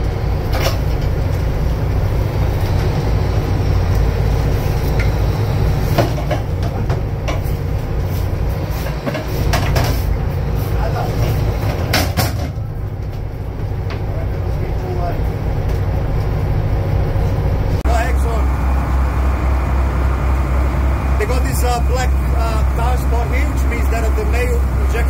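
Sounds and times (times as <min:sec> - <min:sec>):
boat engine rumbling: 0:00.0 - 0:25.0.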